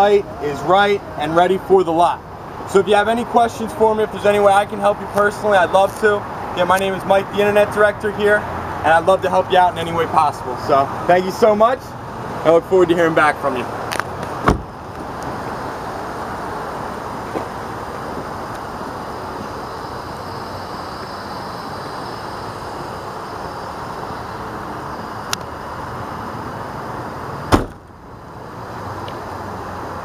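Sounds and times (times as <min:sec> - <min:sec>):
sharp knock: 0:27.5 - 0:27.8.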